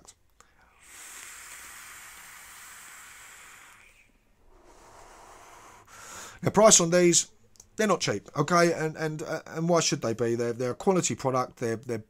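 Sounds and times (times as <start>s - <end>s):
breathy vape inhale hiss: 0.4s - 6.4s
soft vapour exhale: 0.4s - 6.4s.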